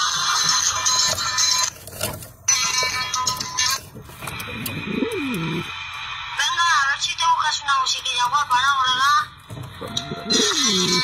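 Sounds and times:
pigeon cooing: 4.3s - 5.7s, 9.8s - 11.0s.

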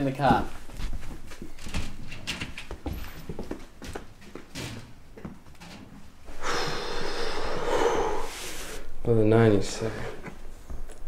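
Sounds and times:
light knocks and shuffles: 0.0s - 6.2s.

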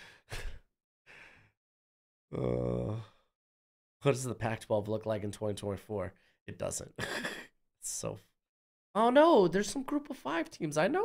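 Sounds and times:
man sighing: 2.3s - 3.2s.

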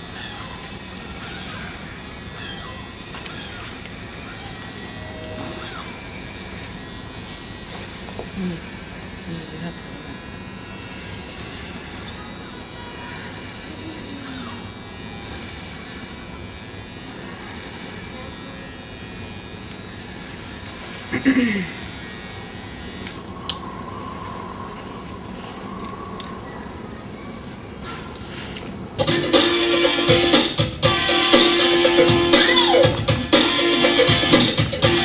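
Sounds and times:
outdoor background hum: 0.0s - 35.0s
faint indistinct voices: 7.4s - 29.0s.

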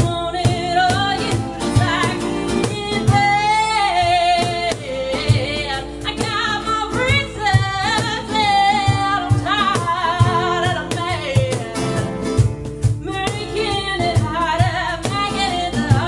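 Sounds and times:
low cajon thumps: 0.0s - 16.0s
strummed acoustic guitar: 0.0s - 16.0s
woman singing with vibrato: 0.0s - 16.0s.

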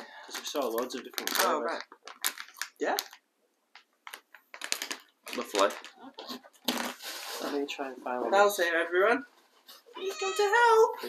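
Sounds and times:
gift wrapping rustling and clicking: 0.0s - 7.6s.

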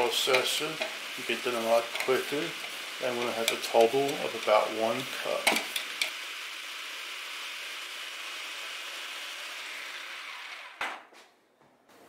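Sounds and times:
food processor whirring: 0.0s - 11.0s
food processor click: 5.4s - 6.2s.

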